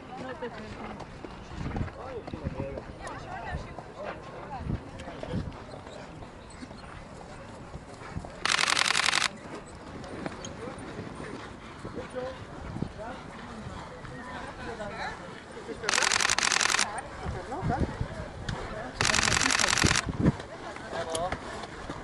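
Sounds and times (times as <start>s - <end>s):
people talking outdoors: 0.0s - 22.0s.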